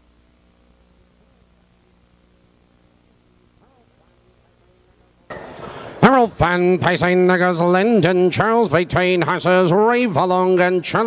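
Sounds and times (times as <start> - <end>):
broadcast background hiss: 0.0 - 11.0
faint low hum: 0.0 - 11.0
race caller's voice: 6.0 - 11.0.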